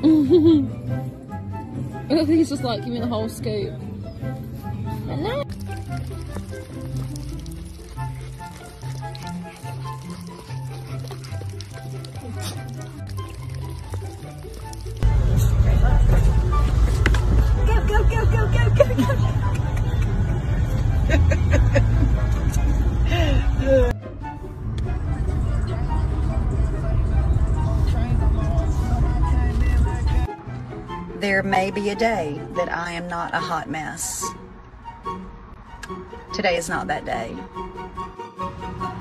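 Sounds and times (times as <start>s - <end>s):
music: 0.0s - 39.0s
road and wind rumble: 0.0s - 39.0s.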